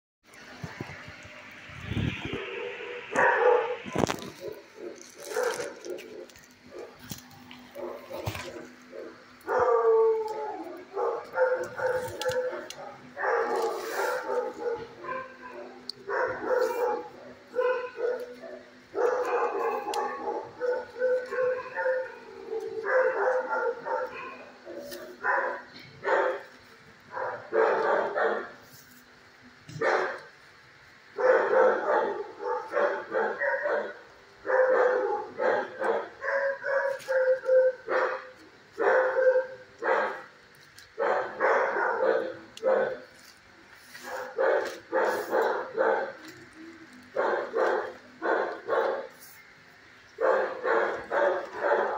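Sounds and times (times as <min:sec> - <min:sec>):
dogs barking: 0:02.3 - 0:28.6, 0:29.7 - 0:30.4, 0:31.0 - 0:43.2, 0:44.0 - 0:51.9.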